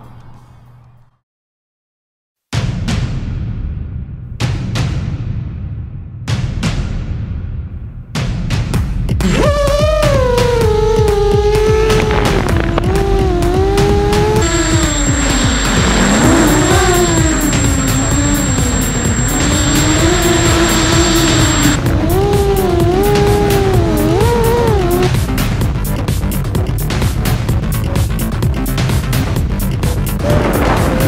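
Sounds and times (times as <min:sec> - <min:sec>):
drone motors whining: 0:09.2 - 0:25.7
electronic music with steady beat: 0:09.2 - 0:30.2
thin high tone: 0:12.3 - 0:25.1.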